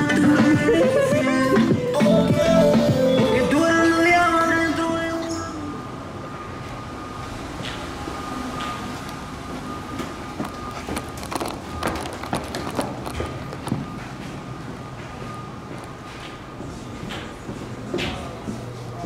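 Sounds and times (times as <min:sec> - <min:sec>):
footsteps on wooden stairs: 0:09.5 - 0:18.7.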